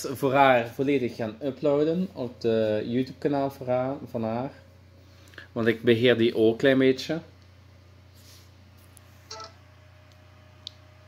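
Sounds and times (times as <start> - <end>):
smartphone electronic tone: 9.3 - 9.6.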